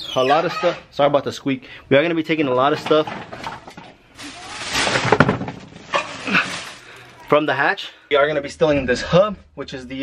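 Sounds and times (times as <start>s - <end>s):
rustling handling noise: 2.6s - 7.4s.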